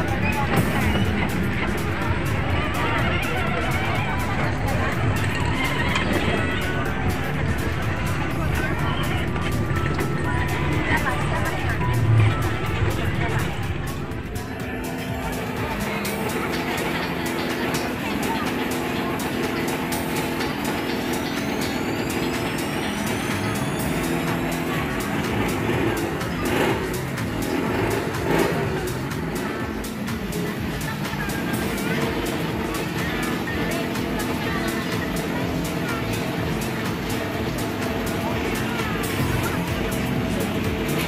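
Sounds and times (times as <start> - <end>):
many people talking: 0.0 - 41.0
motor running: 0.0 - 41.0
music from loudspeakers: 0.0 - 41.0.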